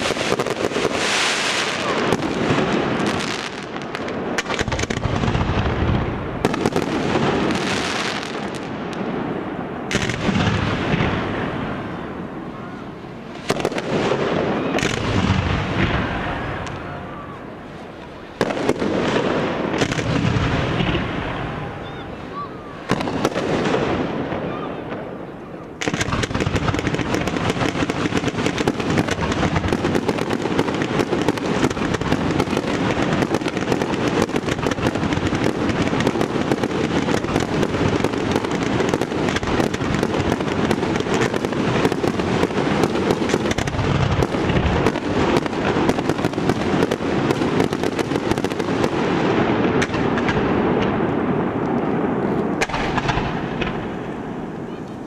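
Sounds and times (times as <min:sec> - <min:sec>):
fireworks bangs and crackling: 0:00.0 - 0:55.0.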